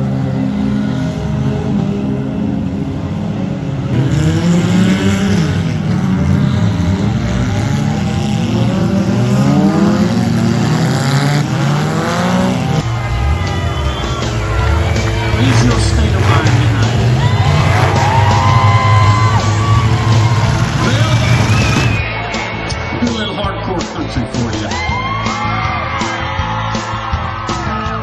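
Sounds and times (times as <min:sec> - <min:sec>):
car engines revving hard: 0:00.0 - 0:24.8
cars ramming each other: 0:03.8 - 0:22.0.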